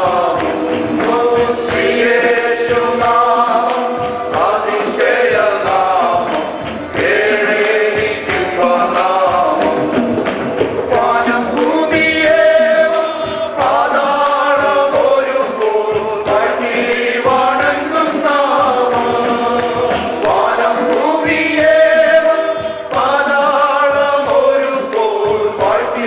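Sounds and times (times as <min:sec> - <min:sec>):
men singing together: 0:00.0 - 0:26.0
ticking beat: 0:00.0 - 0:26.0.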